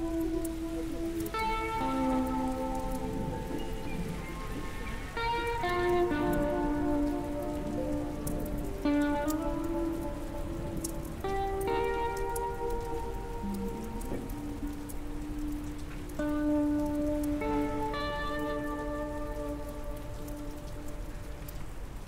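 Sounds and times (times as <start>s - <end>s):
rain pattering: 0.0s - 22.0s
slow ambient music: 0.0s - 22.0s.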